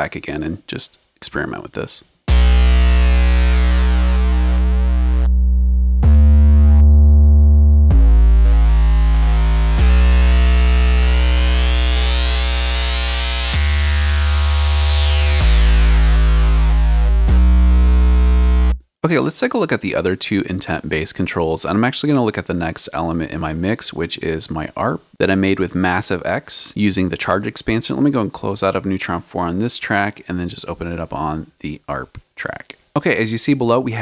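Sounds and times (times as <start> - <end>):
distorted synth sub bass: 2.3 - 18.8.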